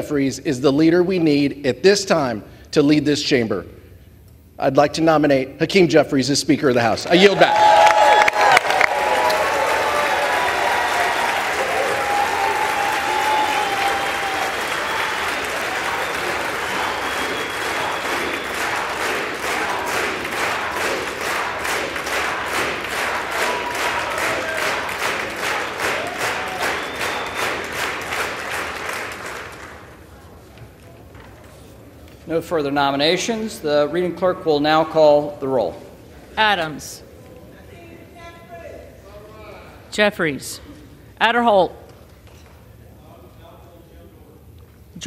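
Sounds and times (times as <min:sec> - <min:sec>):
crowd applauding and cheering: 0:07.1 - 0:30.3.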